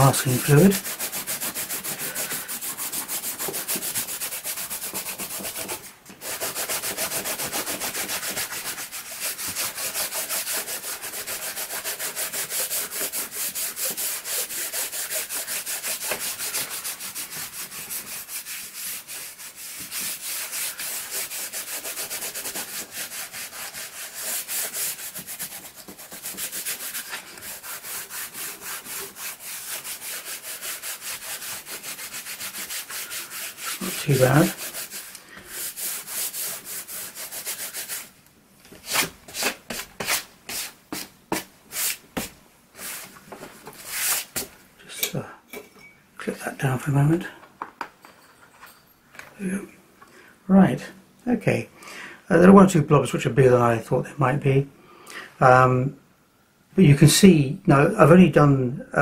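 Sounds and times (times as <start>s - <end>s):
hands rubbing paper: 0.0s - 38.1s, 38.7s - 44.5s.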